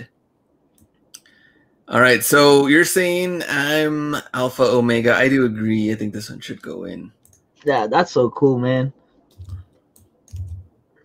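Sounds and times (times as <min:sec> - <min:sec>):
soft low thumps: 0:09.4 - 0:09.7, 0:10.3 - 0:10.7.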